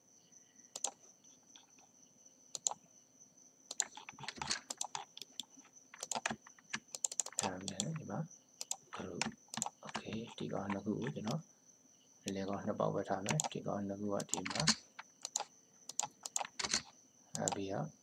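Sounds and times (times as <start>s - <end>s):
mouse and keyboard clicks: 0.8s - 1.0s, 2.6s - 2.8s, 3.7s - 11.4s, 13.2s - 13.6s, 14.2s - 17.6s
person speaking: 7.3s - 11.4s, 12.3s - 15.5s, 16.3s - 18.0s.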